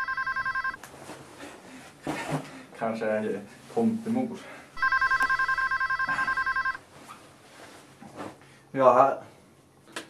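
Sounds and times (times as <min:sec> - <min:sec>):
phone ringing two-tone warble: 0:00.0 - 0:00.8, 0:04.8 - 0:06.8.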